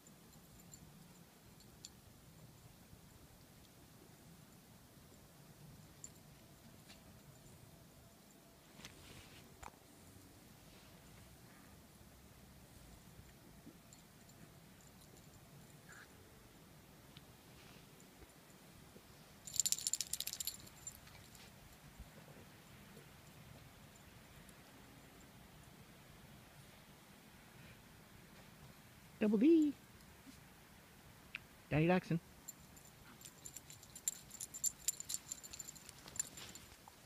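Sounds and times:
metal dog tags jingling: 0.0s - 2.0s, 13.9s - 16.0s, 19.4s - 21.4s, 32.4s - 37.0s.

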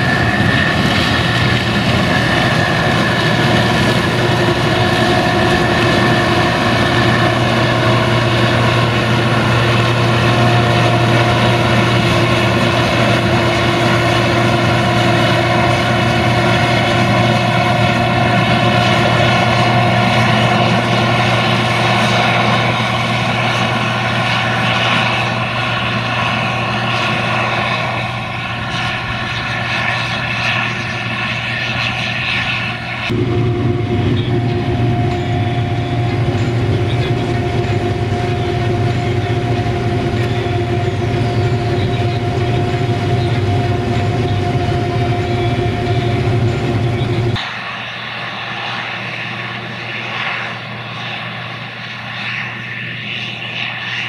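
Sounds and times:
tractor engine: 0.0s - 52.1s
combine harvester droning: 0.0s - 54.0s.

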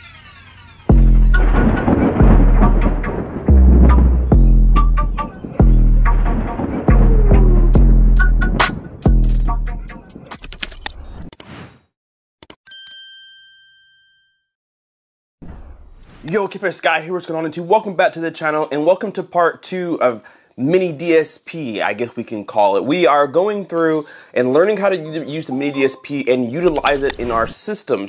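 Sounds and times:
electronic intro music: 0.0s - 10.2s
deep bass hits: 0.9s - 9.9s
dense noisy rumble: 1.3s - 4.3s
bell ding: 12.7s - 14.5s.

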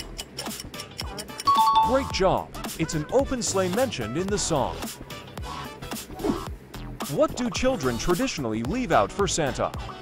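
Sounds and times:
quiz background music: 0.0s - 10.0s
two-note falling chime: 1.5s - 2.3s.

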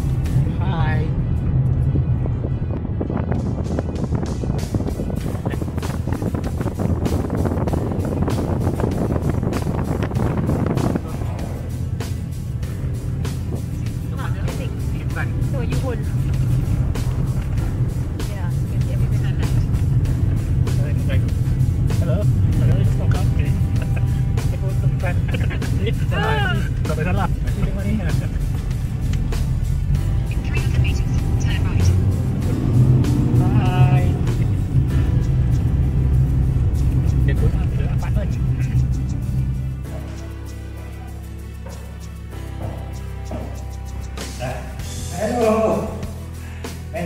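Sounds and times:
wind buffeting microphone: 0.0s - 40.9s
music: 0.0s - 47.0s
raised voices: 10.8s - 12.0s, 23.6s - 28.2s.

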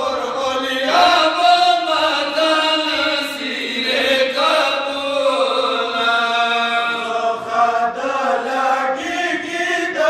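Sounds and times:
men chanting a lament in unison: 0.0s - 10.0s.

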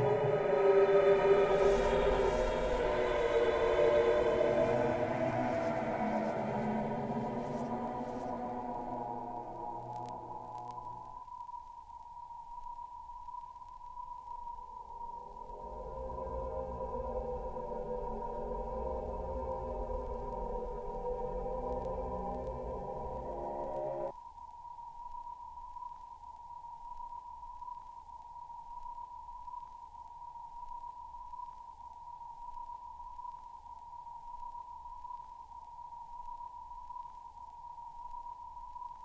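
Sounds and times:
murky deep sound wash: 0.0s - 11.2s, 15.0s - 24.1s
high sine-like tone: 0.0s - 39.0s.

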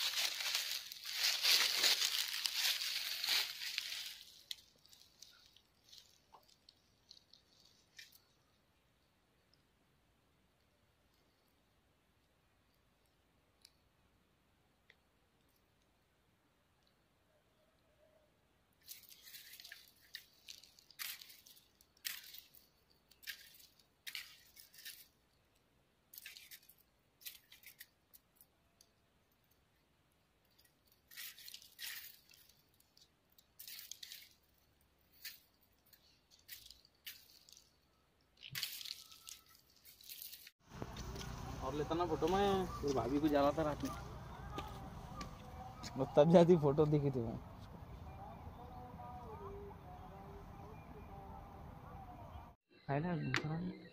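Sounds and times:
footsteps in dry leaves: 0.0s - 8.2s, 18.8s - 25.2s, 26.1s - 27.9s, 30.8s - 37.8s, 38.4s - 47.1s.

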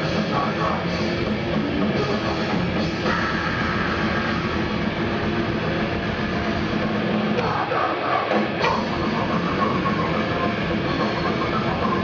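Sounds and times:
fast drumming: 0.0s - 7.7s, 8.3s - 12.0s
distorted electric guitar: 0.0s - 12.0s.

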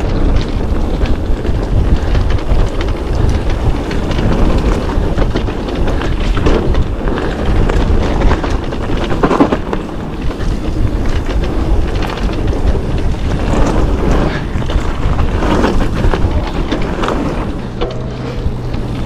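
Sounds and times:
bike clattering and rattling: 0.0s - 19.0s
tyres rumbling on trail: 0.0s - 19.0s
wind buffeting microphone: 0.0s - 19.0s.

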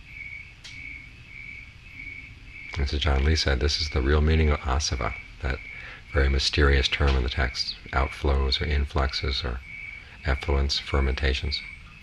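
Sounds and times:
cricket chirping: 0.0s - 12.0s
low background rumble: 0.0s - 12.0s.

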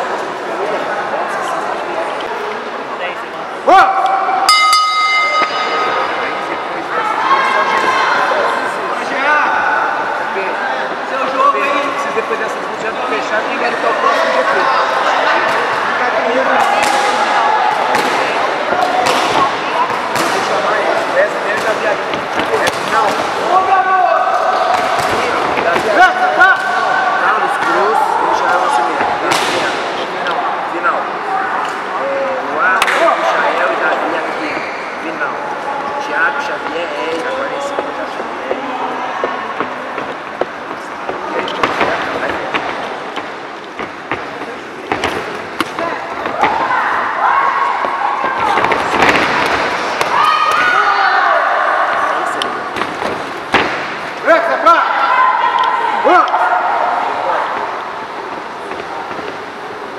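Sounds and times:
people shouting: 45.8s - 52.4s, 54.3s - 57.9s.

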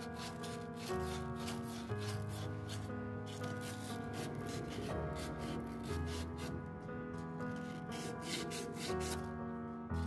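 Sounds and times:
emery paper rubbing copper tube: 0.0s - 6.6s, 7.5s - 9.3s
background music: 0.0s - 10.0s.

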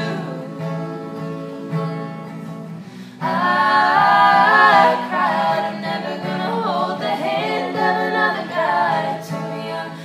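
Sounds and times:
people singing in harmony: 0.0s - 10.0s
strummed acoustic guitar: 0.0s - 10.0s.

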